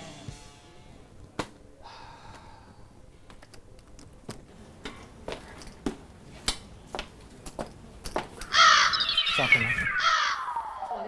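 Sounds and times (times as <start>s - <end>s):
crow cawing: 8.5s - 9.2s, 9.9s - 11.0s
whistle sliding down: 8.8s - 11.0s.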